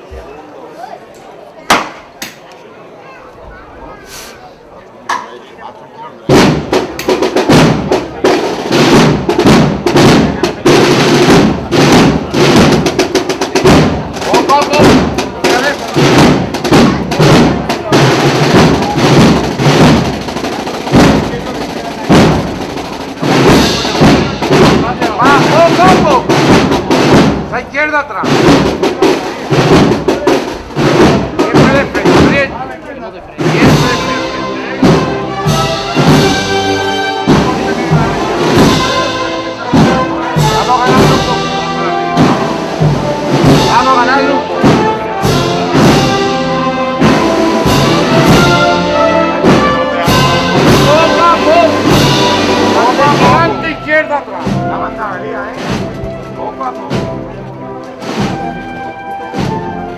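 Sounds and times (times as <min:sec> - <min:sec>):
marching band playing: 0:06.2 - 0:59.9
snare and bass drums: 0:06.3 - 0:32.8, 0:33.4 - 0:59.9.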